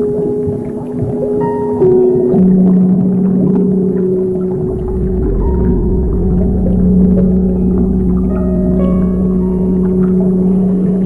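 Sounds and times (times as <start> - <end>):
ambient synth music: 0.0 - 11.0.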